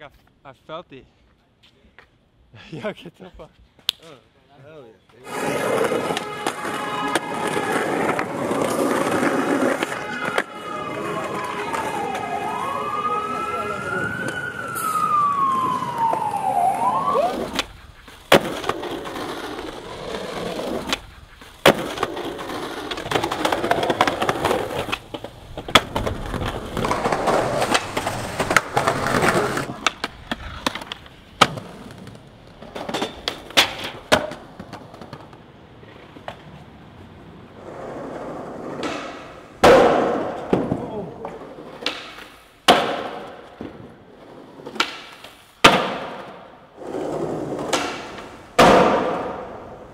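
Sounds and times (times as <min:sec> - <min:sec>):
skateboard wheels rolling on concrete: 0:01.1 - 0:49.9
skateboard clacks: 0:05.4 - 0:12.2, 0:17.4 - 0:36.6, 0:38.6 - 0:46.5, 0:47.1 - 0:49.9
siren wailing: 0:06.3 - 0:09.0, 0:09.6 - 0:17.6.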